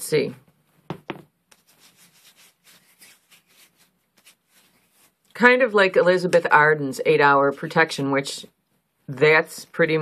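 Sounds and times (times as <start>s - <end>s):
fingertips rubbing: 1.5s - 5.2s.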